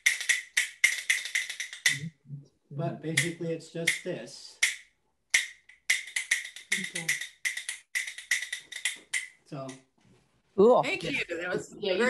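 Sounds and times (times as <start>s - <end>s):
rhythm bones clacking: 0.0s - 2.4s, 3.1s - 9.8s.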